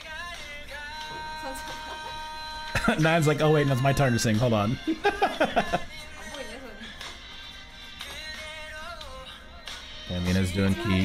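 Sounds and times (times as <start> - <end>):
man laughing: 1.8 - 6.0
person singing high note: 10.6 - 11.0.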